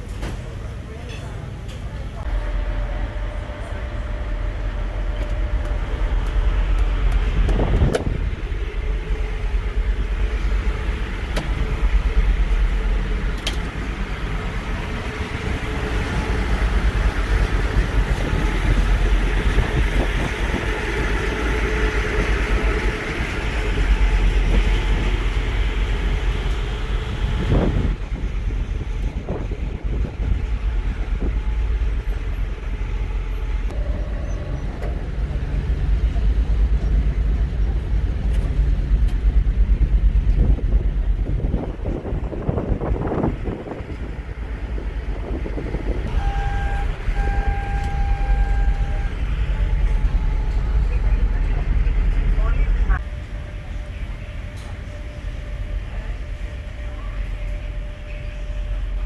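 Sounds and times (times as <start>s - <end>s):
broad background noise: 0.0s - 26.4s, 27.0s - 59.0s
ferry engine rumble: 0.0s - 59.0s.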